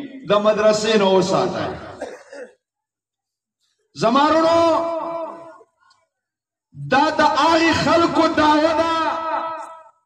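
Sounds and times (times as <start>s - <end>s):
man speaking amplified: 0.0s - 2.0s, 3.8s - 5.8s, 6.8s - 10.0s.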